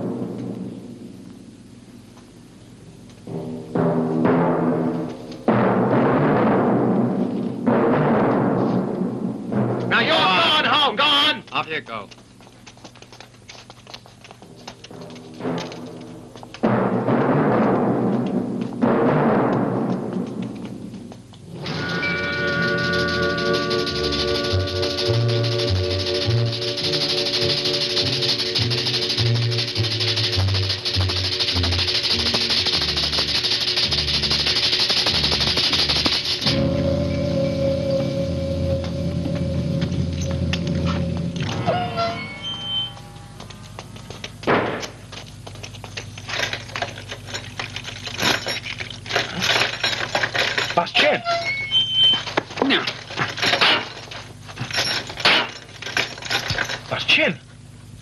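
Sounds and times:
loud hiss: 21.7s - 36.7s
held musical chord: 36.5s - 43.7s.

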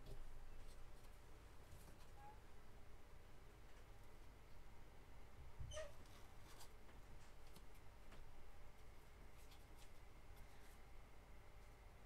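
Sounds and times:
faint high squeak: 2.1s - 2.4s, 5.6s - 6.1s
soft handling noise: 6.0s - 11.0s.

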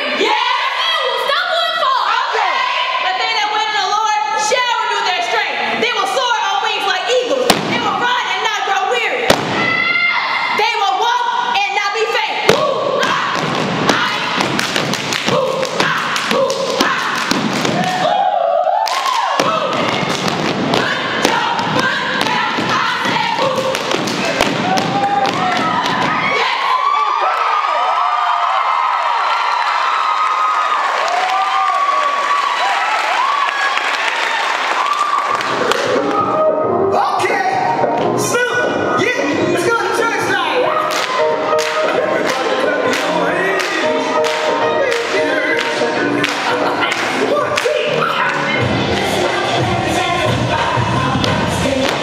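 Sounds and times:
stomping on a wooden stage: 7.4s - 8.1s, 9.2s - 10.0s, 12.4s - 18.2s, 19.0s - 26.3s
hands clapping: 33.4s - 36.2s, 40.9s - 48.4s.

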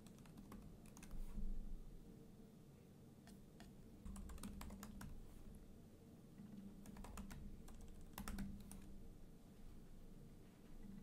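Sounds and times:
faint keyboard typing: 0.0s - 1.5s, 3.2s - 5.3s, 6.3s - 9.0s.

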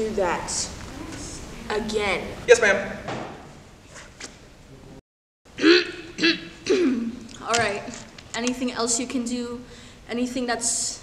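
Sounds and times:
person humming briefly: 5.6s - 6.5s
person clearing throat: 5.6s - 7.2s.

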